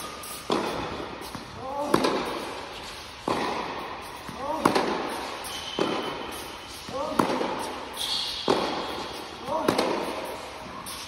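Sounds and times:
shoes squeaking on court: 0.0 - 1.6, 2.3 - 11.0
tennis ball hit with racket: 0.0 - 11.0.

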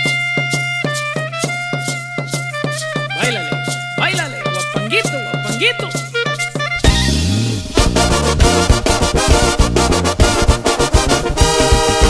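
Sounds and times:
brass band music: 0.0 - 12.0
person speaking: 3.1 - 6.3.

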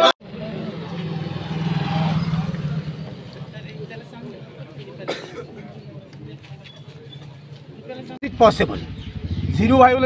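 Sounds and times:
crowd voices: 0.0 - 10.0
vehicle passing by: 0.2 - 4.4, 8.3 - 10.0.

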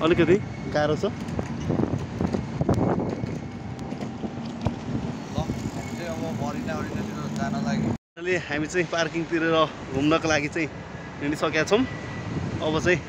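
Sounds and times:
city street traffic: 0.0 - 13.0
man speaking close up: 5.4 - 11.9.

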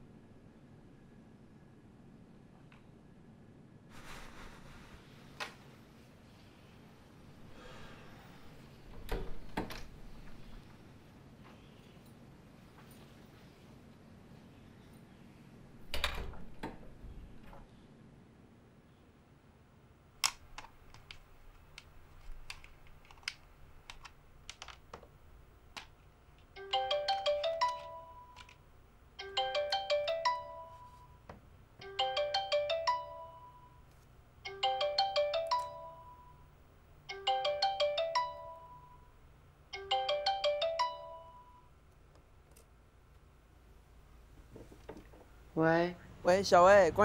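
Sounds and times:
phone ringtone chime: 26.6 - 28.4, 29.2 - 31.2, 31.8 - 33.8, 34.5 - 36.5, 37.1 - 39.1, 39.8 - 41.7.

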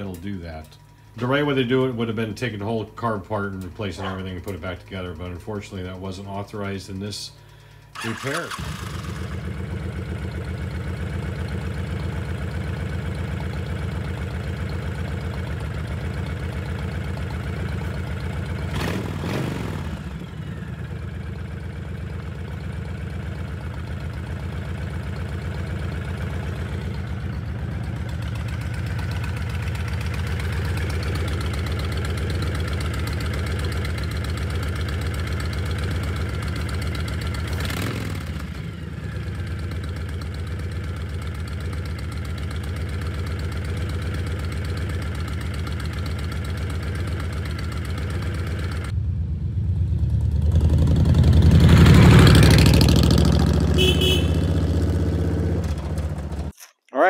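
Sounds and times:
motorcycle engine idling: 0.0 - 56.5.

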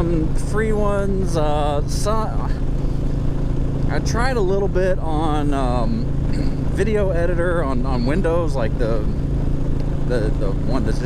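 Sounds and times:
motorcycle engine drone: 0.0 - 11.0
road noise: 0.0 - 11.0.

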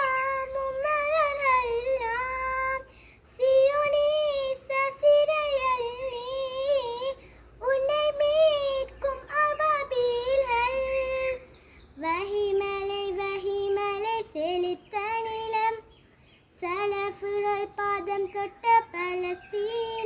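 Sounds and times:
girl singing unaccompanied: 0.0 - 20.0.

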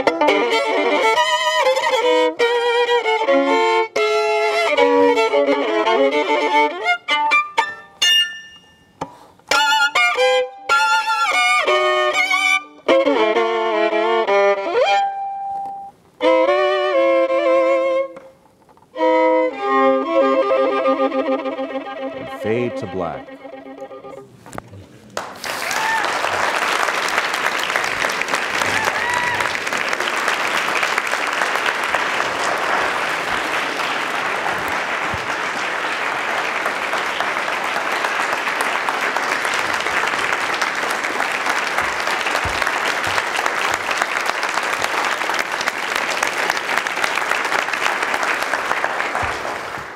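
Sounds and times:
audience applauding: 25.2 - 49.9
crowd calling out: 28.6 - 29.8.

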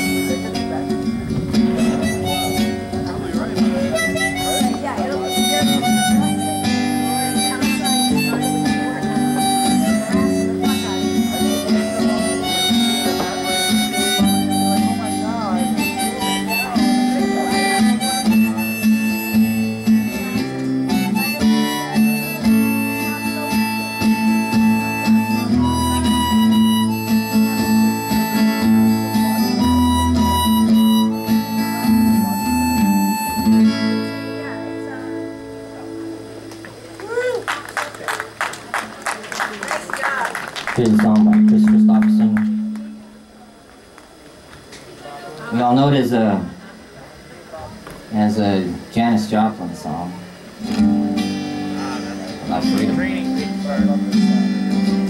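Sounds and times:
harmonica playing: 0.0 - 34.4
strummed acoustic guitar: 0.0 - 37.0, 48.8 - 55.0.

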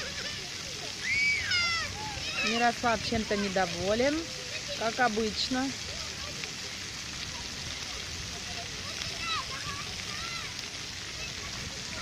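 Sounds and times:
children's voices: 0.0 - 12.0
water jets spraying: 0.0 - 12.0.

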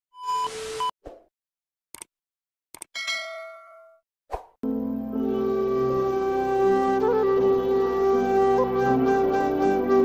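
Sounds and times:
bright bell ding: 3.0 - 4.0
soft music with sustained tones: 4.6 - 10.0.

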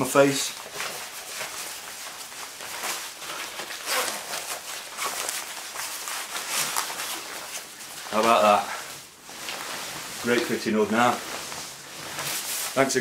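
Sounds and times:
jacket fabric rustling: 0.0 - 13.0.

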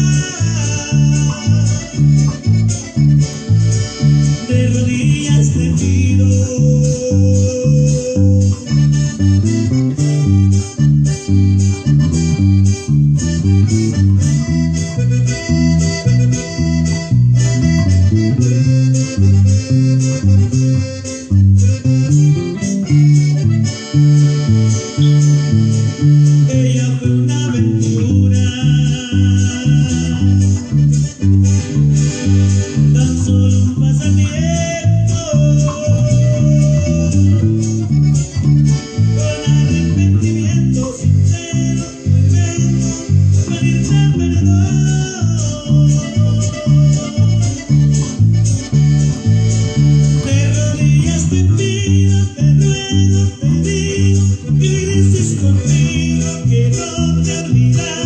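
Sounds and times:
electric bass guitar line: 0.0 - 58.0
recorded band track: 0.0 - 58.0.

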